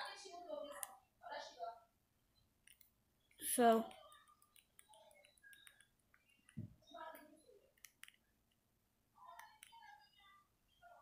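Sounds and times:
soft clicks: 2.6 - 8.6, 9.2 - 10.2.

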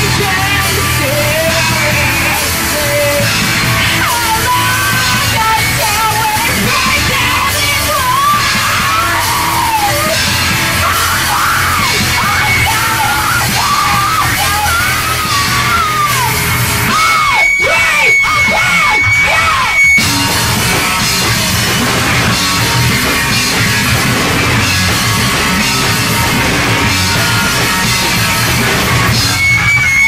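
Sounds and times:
rock band playing live: 0.0 - 30.0
yelled vocal: 0.0 - 30.0.

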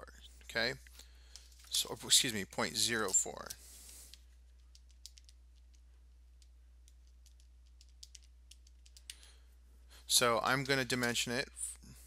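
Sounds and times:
keyboard and mouse clicks: 3.0 - 5.8, 6.4 - 9.2.

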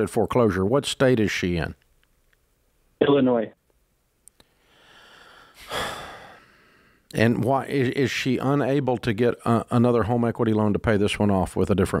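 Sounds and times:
man sighing: 4.7 - 7.0.

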